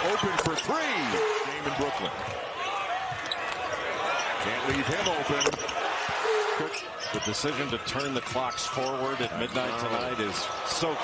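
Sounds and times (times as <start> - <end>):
crowd hum in large hall: 0.0 - 11.0.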